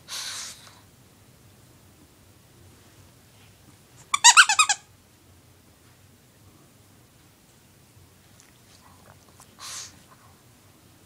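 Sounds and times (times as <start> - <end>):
toy squeaker squeaking: 4.1 - 4.8.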